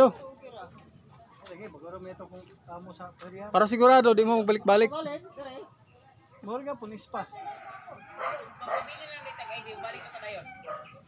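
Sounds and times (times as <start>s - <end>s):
people talking: 3.1s - 11.0s
dog barking: 7.4s - 11.0s.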